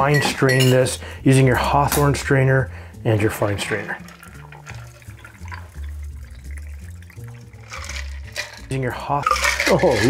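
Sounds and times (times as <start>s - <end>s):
background music with bass: 0.0s - 10.0s
cocktail trickling onto ice: 3.8s - 10.0s.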